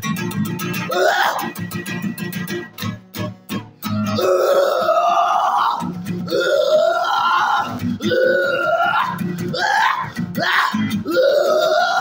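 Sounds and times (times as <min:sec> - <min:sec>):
acoustic guitar strumming: 0:00.0 - 0:11.2
man singing wordless vowel cries: 0:00.8 - 0:01.6, 0:04.0 - 0:12.0.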